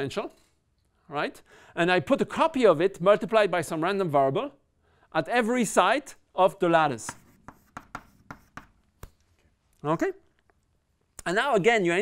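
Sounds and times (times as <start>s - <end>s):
chalk on blackboard: 7.0s - 9.2s.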